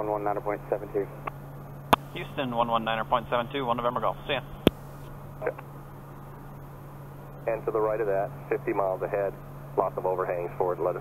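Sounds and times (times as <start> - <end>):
turboprop engine drone: 0.0 - 11.0
faint hiss: 0.7 - 11.0.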